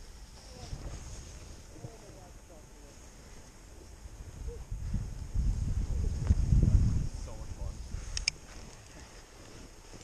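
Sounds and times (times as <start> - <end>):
wind buffeting camera microphone: 0.0 - 10.0.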